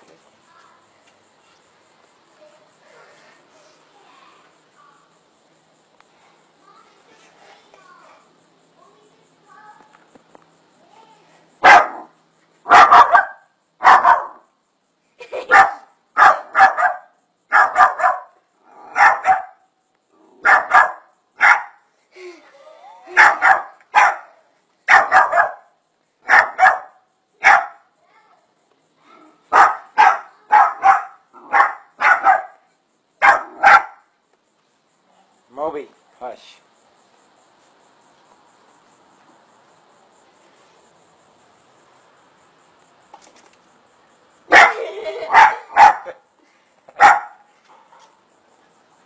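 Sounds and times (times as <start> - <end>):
small dog barking: 11.6 - 14.4, 15.3 - 19.6, 20.4 - 21.8, 23.1 - 27.8, 29.5 - 34.1, 44.5 - 46.2, 47.0 - 48.1.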